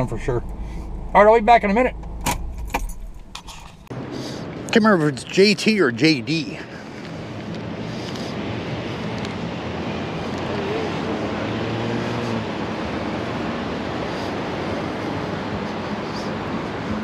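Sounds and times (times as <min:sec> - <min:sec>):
road traffic: 0:00.0 - 0:17.0.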